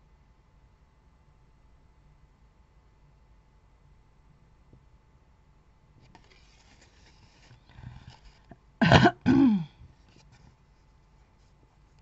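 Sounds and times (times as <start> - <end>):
card paper rustling: 6.0 - 8.5
woman clearing her throat: 8.8 - 9.8.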